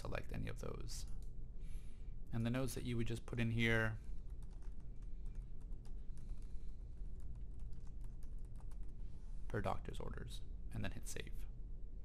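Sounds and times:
typing on computer keyboard: 4.2 - 8.9.

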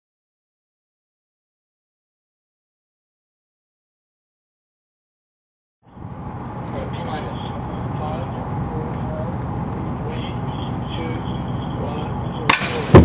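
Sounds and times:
steady outdoor noise: 5.8 - 13.0
faint distant voices: 6.6 - 13.0
loud metallic impact: 12.5 - 13.0
sharp knock: 12.5 - 13.0.

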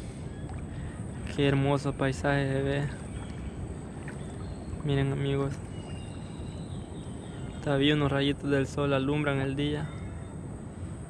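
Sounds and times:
boat moving over water: 0.0 - 9.3.

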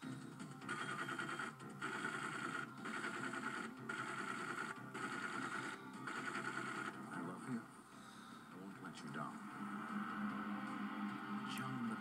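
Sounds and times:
film trailer music: 0.0 - 12.0
steady rapid clatter: 6.1 - 7.0.

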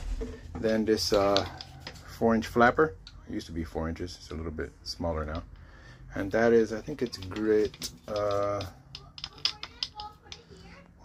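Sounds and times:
light clicks and taps: 1.0 - 2.0, 5.2 - 10.8.

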